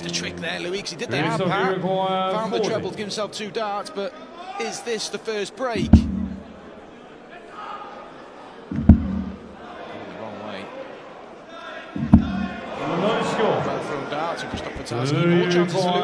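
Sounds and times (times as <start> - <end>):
crowd murmur: 5.6 - 16.0
darts striking dartboard: 5.8 - 6.5, 8.7 - 9.4, 12.0 - 12.6.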